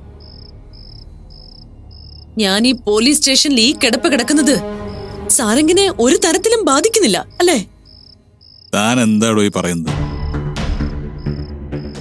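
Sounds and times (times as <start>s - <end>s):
cricket-like chirping: 0.2s - 3.3s, 4.7s - 9.0s, 10.2s - 12.0s
person speaking: 8.8s - 9.8s.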